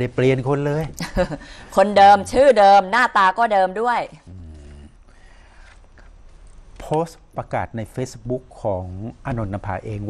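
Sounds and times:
person murmuring: 4.2 - 5.0.

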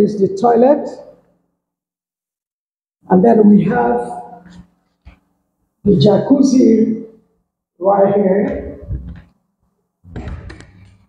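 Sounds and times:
person speaking: 0.0 - 1.2, 3.0 - 5.2, 5.8 - 7.2, 7.8 - 9.4.

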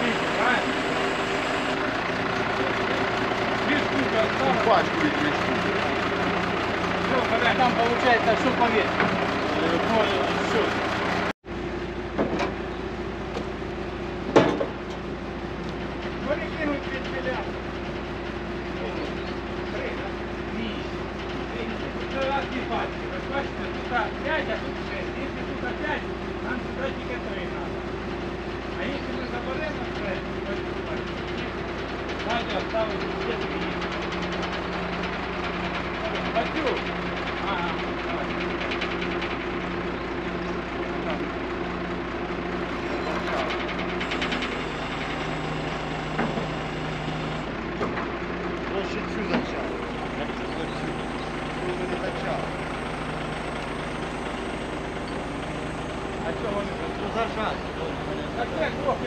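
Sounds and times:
truck engine humming: 0.0 - 59.0.

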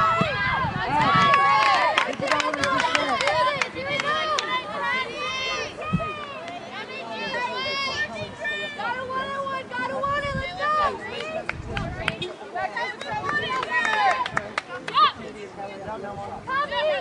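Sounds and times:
people shouting and calling out: 0.0 - 17.0.

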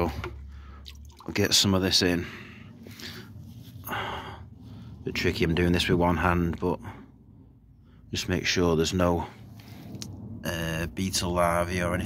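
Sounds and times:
person breathing: 0.4 - 0.9, 2.2 - 5.0.

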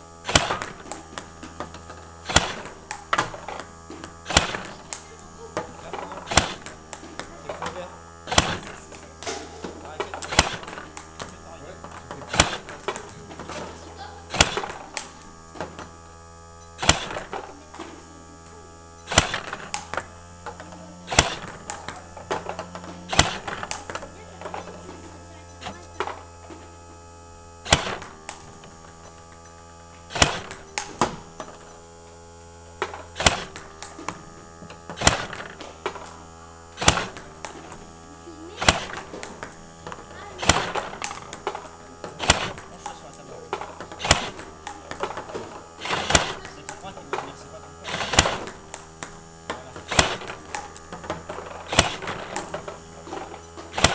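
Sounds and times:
steady low hum: 0.0 - 53.9
table tennis ball clicks: 0.2 - 38.0, 38.6 - 53.9.

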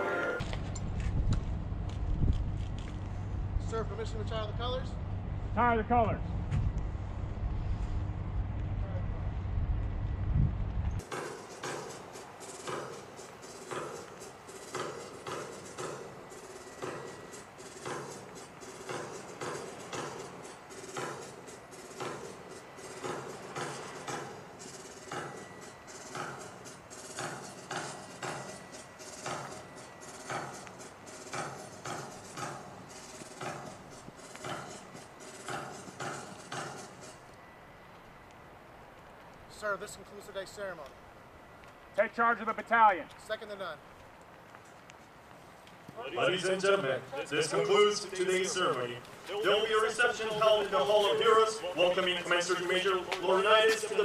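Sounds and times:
low rumble: 0.5 - 11.0
marching clicks and knocks: 10.8 - 37.4, 43.8 - 54.0.

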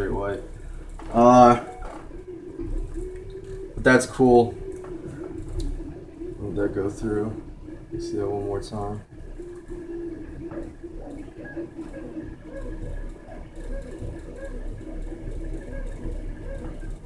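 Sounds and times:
printer motor tones jumping in pitch: 0.0 - 8.1, 9.0 - 17.0
exhaust fan humming: 0.0 - 17.0
thin steady whine: 0.0 - 17.0.

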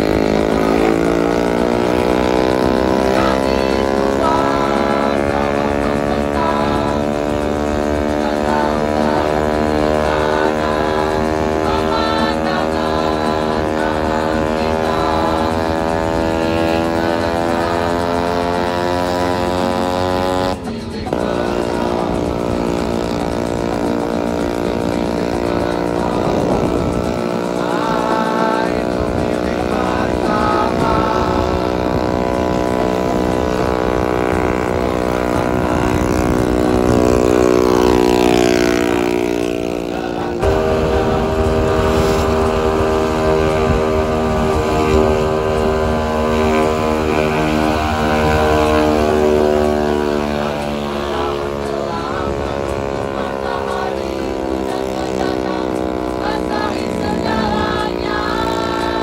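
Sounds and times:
scooter engine droning: 0.0 - 59.0.

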